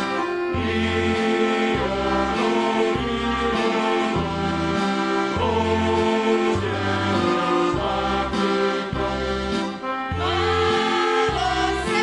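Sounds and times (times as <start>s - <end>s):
folk dance music: 0.0s - 12.0s.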